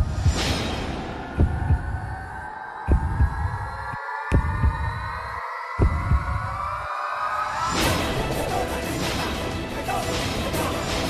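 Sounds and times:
heartbeat-like double thump: 0:00.0 - 0:02.2, 0:02.9 - 0:03.7, 0:04.3 - 0:05.1, 0:05.8 - 0:06.6
rising drone: 0:00.0 - 0:09.9.

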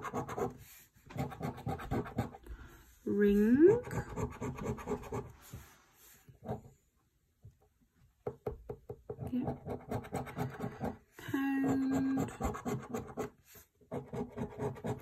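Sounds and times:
coin scratching scratch card: 0:00.0 - 0:00.6, 0:09.4 - 0:11.0, 0:11.7 - 0:15.0.

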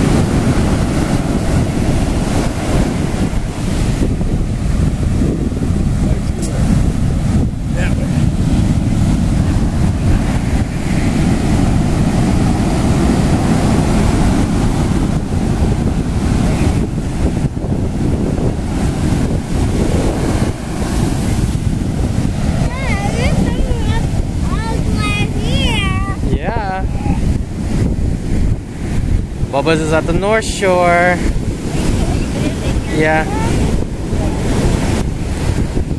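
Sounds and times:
ocean surf breaking: 0:00.0 - 0:35.9
wind buffeting microphone: 0:00.0 - 0:35.9.

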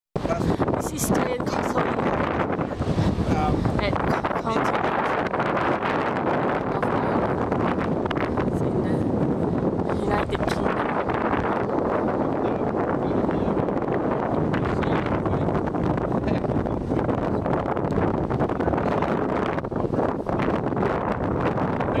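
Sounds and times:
wind on microphone: 0:00.2 - 0:22.0.

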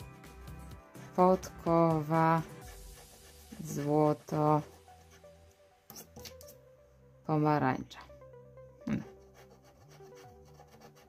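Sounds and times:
coin scraping scratch card: 0:05.9 - 0:06.6.

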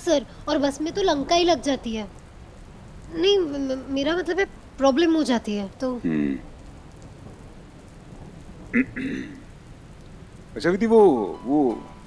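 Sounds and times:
rain on a car: 0:00.0 - 0:12.0.

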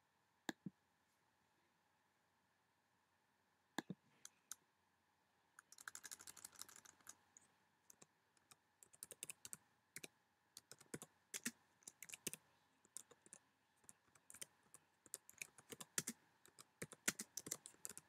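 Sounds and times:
faint keyboard typing: 0:05.6 - 0:18.0.

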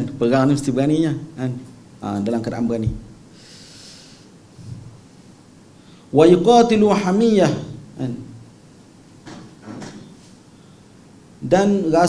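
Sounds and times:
man breathing in through nose: 0:03.3 - 0:04.4.

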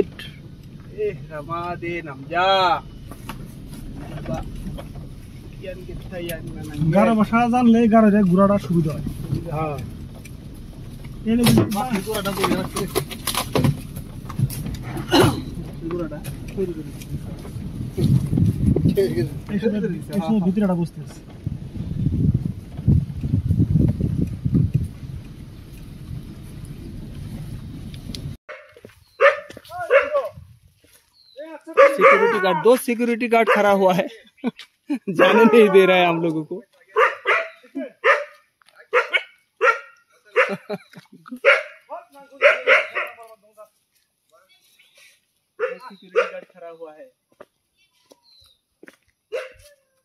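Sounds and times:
low rumbling noise: 0:13.0 - 0:28.4
dog barking: 0:28.5 - 0:30.3, 0:31.7 - 0:32.7, 0:33.4 - 0:33.8, 0:35.2 - 0:35.9, 0:36.9 - 0:40.8, 0:41.4 - 0:43.2, 0:45.6 - 0:46.5, 0:49.3 - 0:49.9.

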